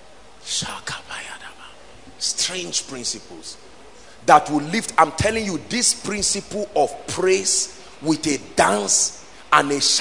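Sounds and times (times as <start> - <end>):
man whispering into a microphone: 0.4 - 4.3.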